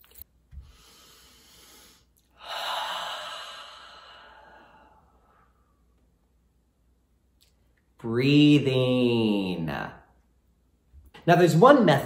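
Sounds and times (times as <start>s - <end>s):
person sighing deeply: 2.4s - 5.1s.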